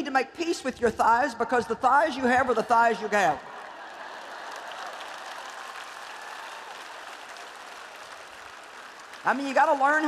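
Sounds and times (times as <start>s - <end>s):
audience applauding: 2.8s - 10.0s.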